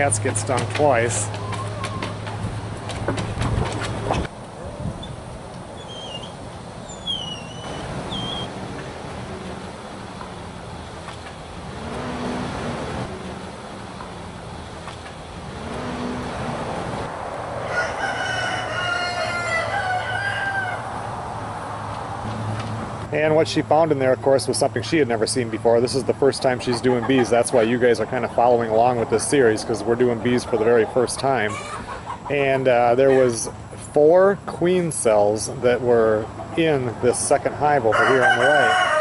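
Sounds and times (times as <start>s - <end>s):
small birds chirping: 5.0s - 8.5s
rooster crowing: 17.6s - 21.1s, 37.9s - 39.0s.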